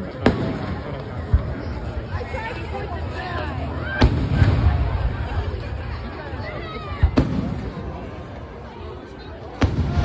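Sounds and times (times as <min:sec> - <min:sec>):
crowd chatter: 0:00.0 - 0:10.0
firework deep boom: 0:09.6 - 0:10.0
firework sharp bang: 0:09.6 - 0:10.0.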